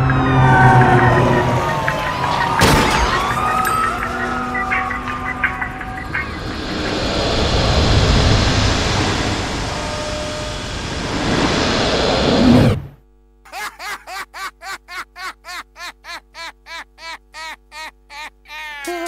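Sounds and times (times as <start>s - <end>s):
siren-like gliding tone: 0.0s - 12.8s
loud dense rushing noise: 0.0s - 13.0s.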